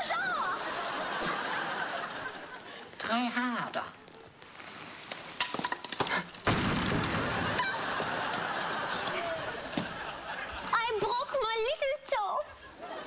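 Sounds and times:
studio audience laughter: 0:00.7 - 0:02.7, 0:07.2 - 0:10.8
loud crash: 0:06.5 - 0:07.8.

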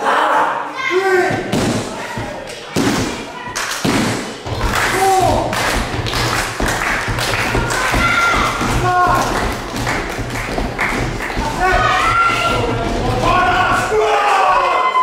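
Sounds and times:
people shouting: 0:00.0 - 0:03.5, 0:04.6 - 0:05.6, 0:07.3 - 0:09.9, 0:11.3 - 0:15.0.

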